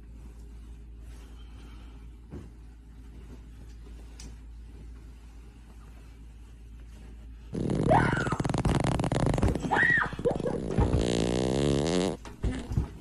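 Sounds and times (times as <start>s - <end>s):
rattling fart: 7.5s - 13.0s.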